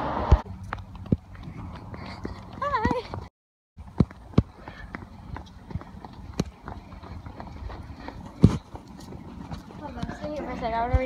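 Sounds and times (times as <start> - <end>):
footsteps on concrete floor: 0.4 - 11.0.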